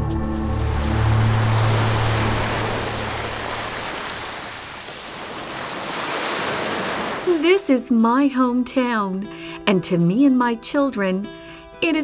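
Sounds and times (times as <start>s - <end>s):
low background music: 0.0s - 3.9s, 7.3s - 12.0s
waves washing onto beach: 0.6s - 7.6s.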